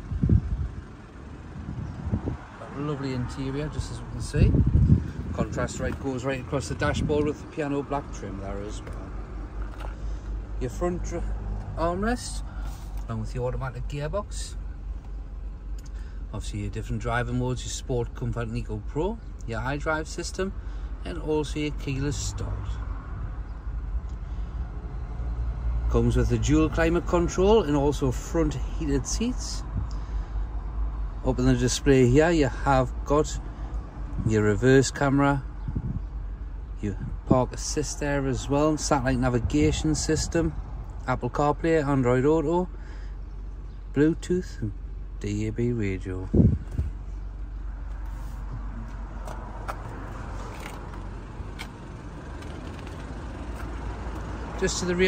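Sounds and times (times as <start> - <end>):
car engine idling: 0.0 - 55.0
low outdoor rumble: 0.0 - 55.0.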